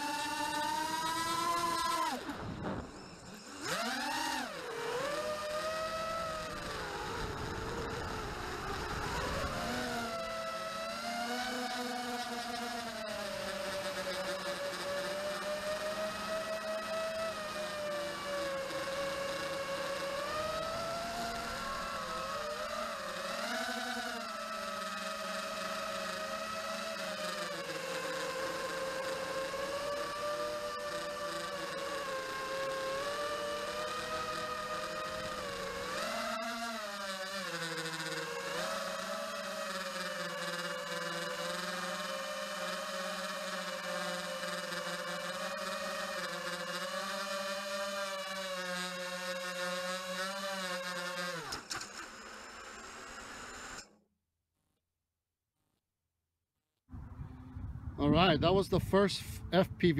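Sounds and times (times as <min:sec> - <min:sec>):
quadcopter motors whining: 0:00.0 - 0:54.0.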